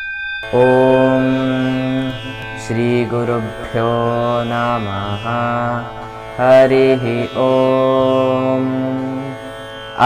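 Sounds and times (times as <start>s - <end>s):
person chanting: 0.4s - 10.0s
steady drone: 0.4s - 10.0s.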